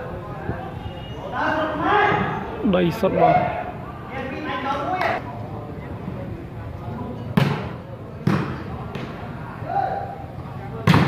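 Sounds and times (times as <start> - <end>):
spectators murmuring: 0.0 - 11.0
volleyball being hit: 7.4 - 9.2.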